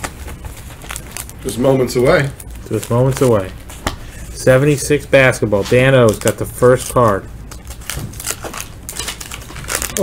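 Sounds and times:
wax paper wrapper crinkling: 0.0s - 10.0s.

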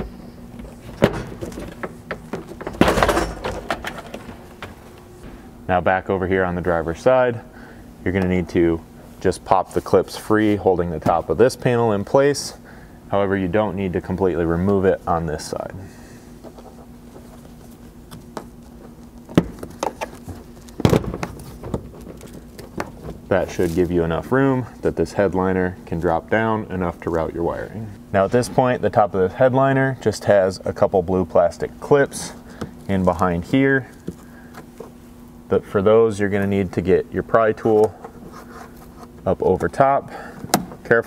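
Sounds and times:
low hum: 0.0s - 8.2s.

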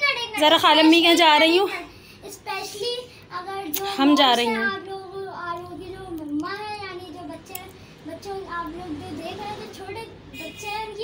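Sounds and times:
boy singing softly: 1.8s - 11.0s.

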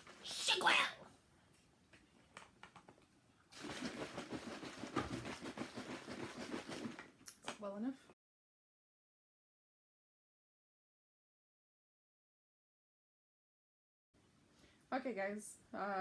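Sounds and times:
juice sloshing in shaken bottles: 3.5s - 7.2s.

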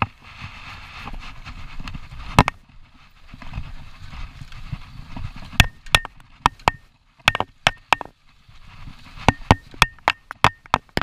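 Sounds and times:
bike rattling over bumps: 0.0s - 11.0s.

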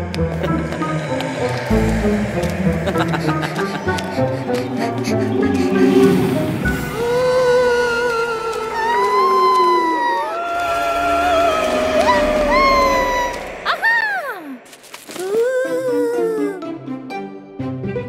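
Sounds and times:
spooky background music: 0.0s - 18.0s
cartoon ghost wailing: 6.9s - 14.6s.

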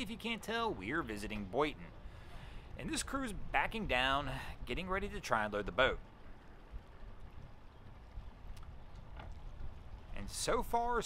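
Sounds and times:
faint ticks: 8.1s - 10.2s.

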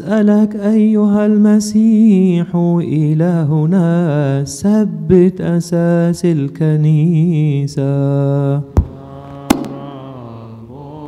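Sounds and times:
sharp knock: 8.8s - 9.9s
man chanting low note: 8.9s - 11.0s.

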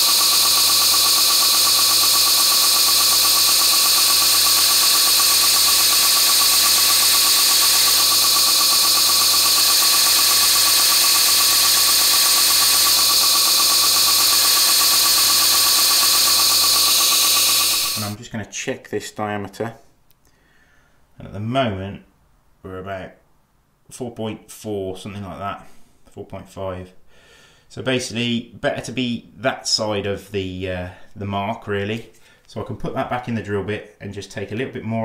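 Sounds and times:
belt grinder grinding drill bit: 0.0s - 18.2s.

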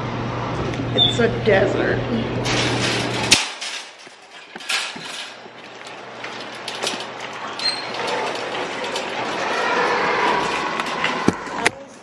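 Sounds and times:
wire shopping cart rattling: 2.4s - 12.0s.

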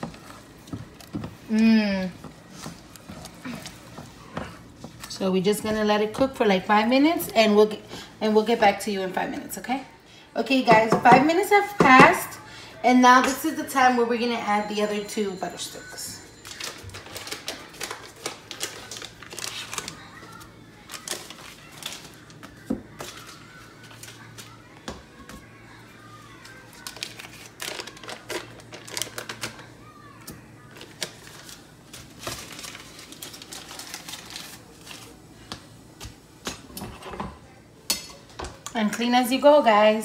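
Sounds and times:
paper wrapper rustling: 16.4s - 24.6s, 26.4s - 29.7s, 30.6s - 35.3s.

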